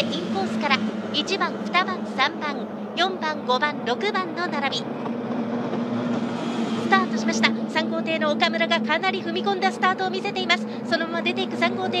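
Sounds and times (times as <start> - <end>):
outboard engines at full throttle: 0.0 - 12.0.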